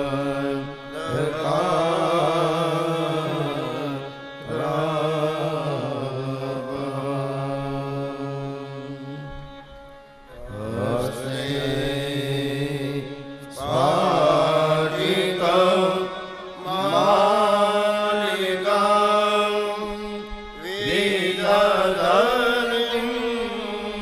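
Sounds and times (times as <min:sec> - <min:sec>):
man chanting melodically: 0:00.0 - 0:09.6, 0:10.5 - 0:24.0
steady held drone: 0:00.0 - 0:24.0.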